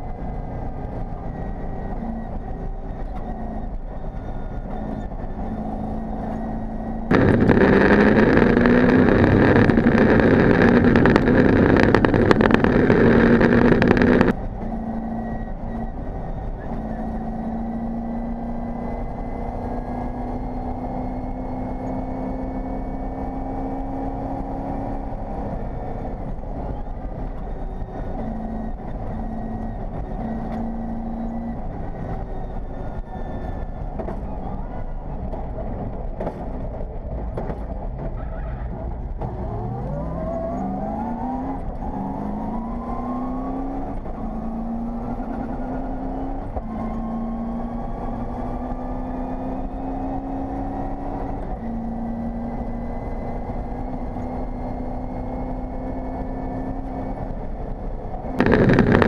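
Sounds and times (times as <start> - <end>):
car engine at speed: 0.0 - 59.0
loud rough noise: 7.1 - 14.4, 58.4 - 59.0.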